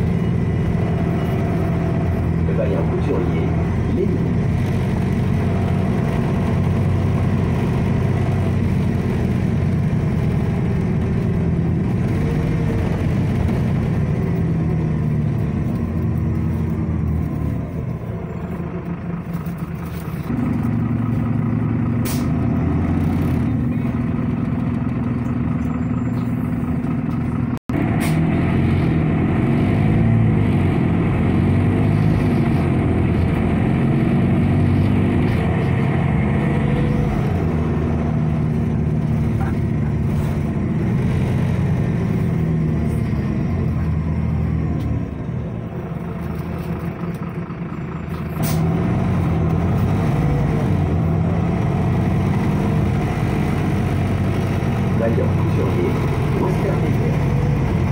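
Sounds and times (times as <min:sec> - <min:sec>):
bus engine hum: 0:00.0 - 0:57.9.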